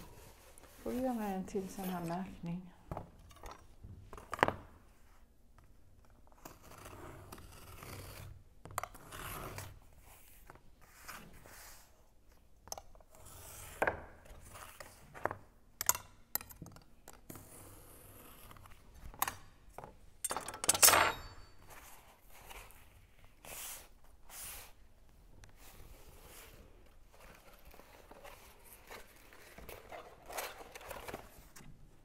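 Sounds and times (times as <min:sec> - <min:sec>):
knife scraping cardboard: 0:06.3 - 0:11.9.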